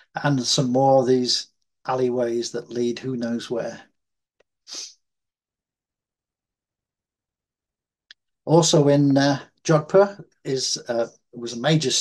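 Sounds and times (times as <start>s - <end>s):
sharp breath into microphone: 4.7s - 5.0s.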